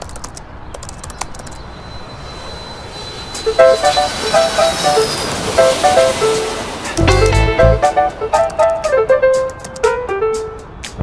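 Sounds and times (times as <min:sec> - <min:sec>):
jet airliner passing overhead: 0:01.3 - 0:09.5
thin high whine: 0:01.6 - 0:08.2.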